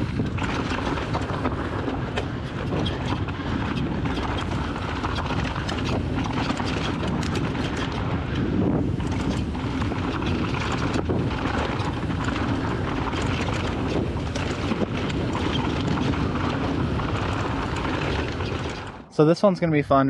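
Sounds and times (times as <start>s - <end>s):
bike rattles and knocks: 0.0s - 19.1s
bike tyres on loose dirt: 0.0s - 19.1s.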